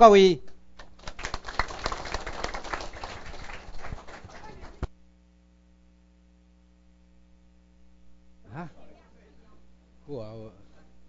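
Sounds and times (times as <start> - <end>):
audience applauding: 0.8 - 4.9.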